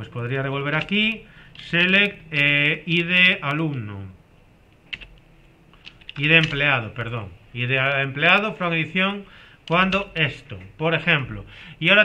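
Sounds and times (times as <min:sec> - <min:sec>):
computer keyboard keystrokes: 0:00.7 - 0:02.5, 0:04.9 - 0:06.7, 0:09.6 - 0:10.2.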